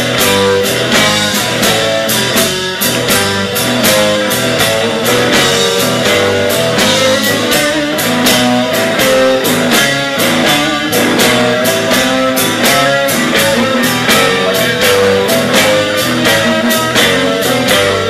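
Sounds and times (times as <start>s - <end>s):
drum beat with cymbals: 0.0s - 18.0s
electric guitar: 0.0s - 18.0s.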